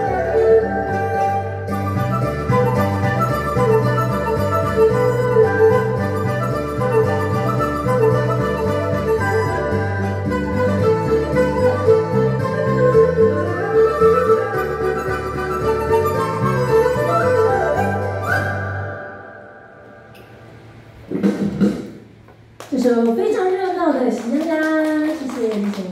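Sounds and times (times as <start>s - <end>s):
erhu pipa and dizi folk tune: 0.0s - 20.1s
held high flute note: 0.0s - 20.2s.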